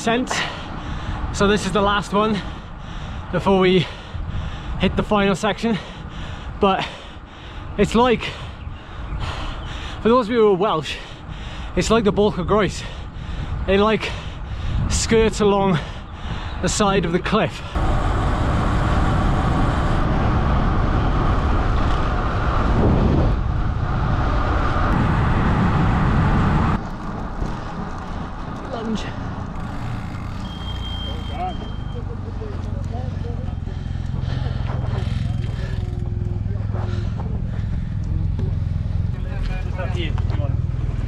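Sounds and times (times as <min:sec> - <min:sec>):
wind rushing over microphone: 0:00.7 - 0:06.7, 0:07.6 - 0:30.2
low rumble: 0:32.8 - 0:41.0.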